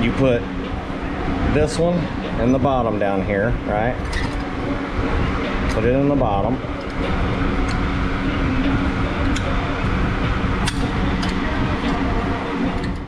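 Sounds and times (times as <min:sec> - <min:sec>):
loud mechanical hum: 0:00.0 - 0:13.0.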